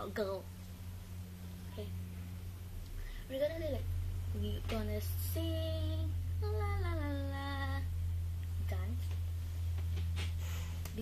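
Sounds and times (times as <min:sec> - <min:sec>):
steady low hum: 0:00.0 - 0:11.0
girl singing long sliding note: 0:03.2 - 0:07.9.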